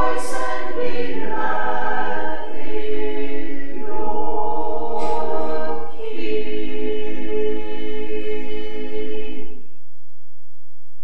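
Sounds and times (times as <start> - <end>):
choir singing sustained chords: 0.0 - 9.7.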